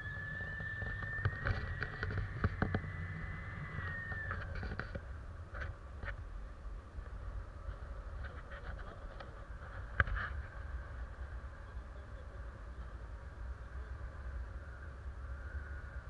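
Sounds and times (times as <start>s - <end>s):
high tone sliding down: 0.0s - 4.8s.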